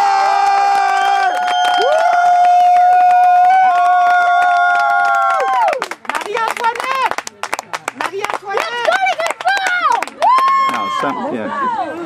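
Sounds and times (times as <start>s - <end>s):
spectators screaming: 0.0s - 5.8s, 10.2s - 11.8s.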